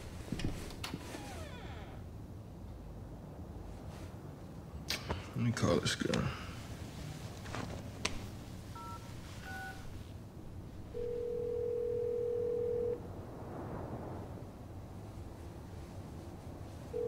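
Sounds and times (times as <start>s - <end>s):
phone ringback tone: 8.8s - 9.8s, 10.9s - 13.0s.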